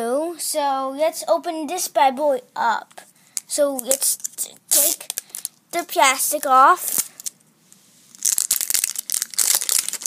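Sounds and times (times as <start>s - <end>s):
plastic shrink-wrap crinkling: 3.8s - 7.4s, 8.1s - 10.0s.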